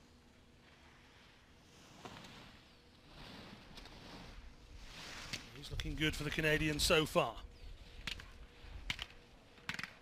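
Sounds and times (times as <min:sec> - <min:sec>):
sharp clicks: 0:08.0 - 0:10.0.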